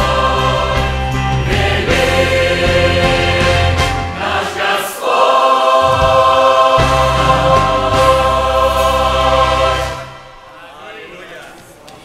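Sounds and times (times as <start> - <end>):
choir singing a hymn: 0.0 - 10.8
low accompaniment: 5.4 - 10.3.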